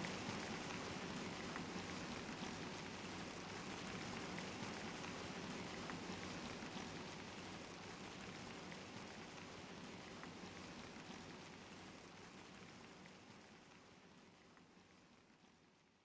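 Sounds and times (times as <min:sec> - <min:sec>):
raindrop ticks: 0:00.0 - 0:15.5
hiss of rainfall: 0:00.0 - 0:15.8.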